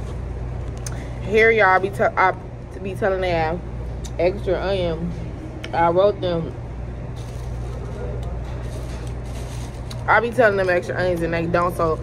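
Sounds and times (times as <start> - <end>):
restaurant room hum: 0.0 - 12.0.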